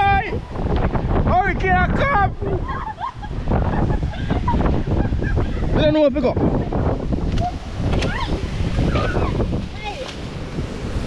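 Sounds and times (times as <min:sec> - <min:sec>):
surf washing on shore: 0:00.0 - 0:11.0
wind buffeting microphone: 0:00.0 - 0:11.0.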